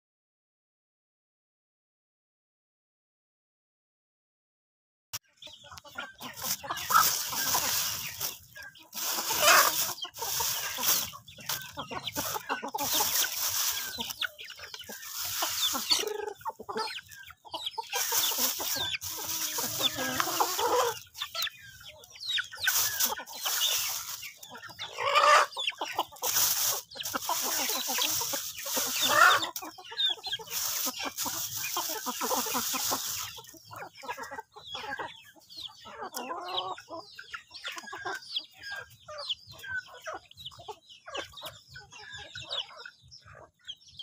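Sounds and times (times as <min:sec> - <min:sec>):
chickens clucking: 0:05.2 - 0:44.0.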